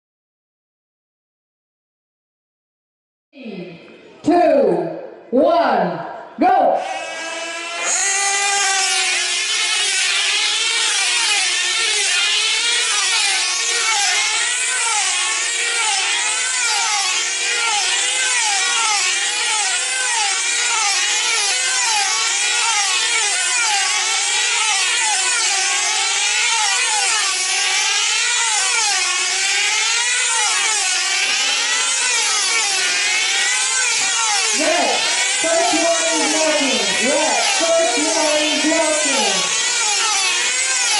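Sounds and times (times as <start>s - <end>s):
model aircraft engines whining: 6.9s - 40.9s.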